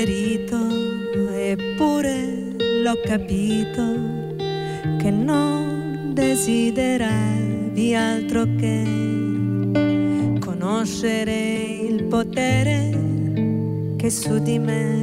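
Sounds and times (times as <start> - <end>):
acoustic and electric guitar: 0.0 - 15.0
woman singing: 0.0 - 15.0.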